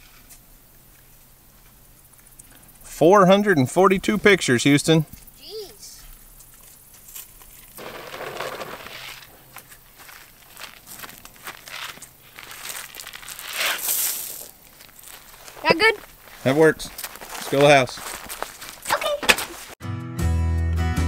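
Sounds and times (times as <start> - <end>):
footsteps on grass: 6.3 - 19.8
grain pouring onto grass: 7.8 - 9.3, 9.9 - 15.6.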